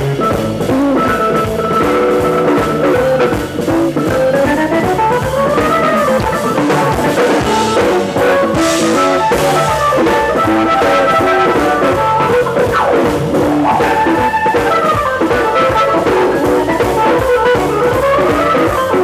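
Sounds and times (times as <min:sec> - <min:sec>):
blues band playing: 0:00.0 - 0:19.0
guitar note sliding: 0:00.0 - 0:19.0.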